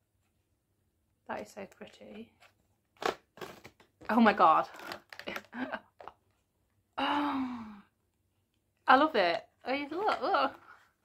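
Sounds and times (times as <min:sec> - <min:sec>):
woman sighing: 0:07.0 - 0:08.0.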